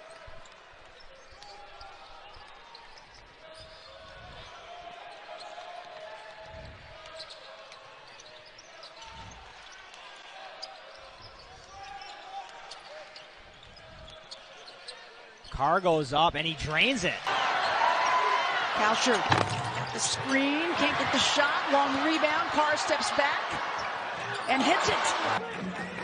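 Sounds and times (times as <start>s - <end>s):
murmur of crowd voices: 17.2s - 26.0s.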